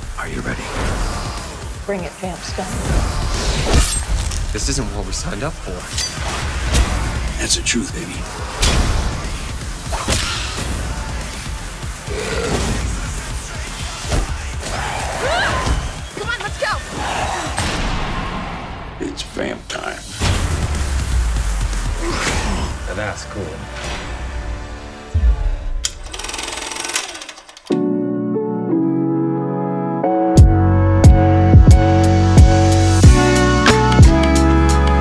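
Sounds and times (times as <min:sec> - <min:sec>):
sharp hit: 0:20.1 - 0:22.0.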